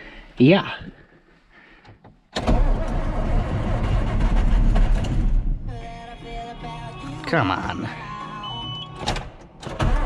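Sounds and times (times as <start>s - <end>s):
tractor diesel engine starting: 2.4s - 5.7s.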